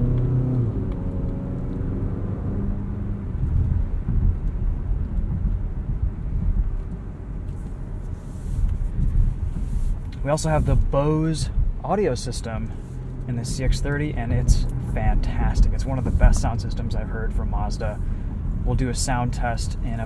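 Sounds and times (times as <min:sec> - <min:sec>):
car engine humming: 0:00.0 - 0:20.0
tyre and road rumble: 0:00.0 - 0:20.0.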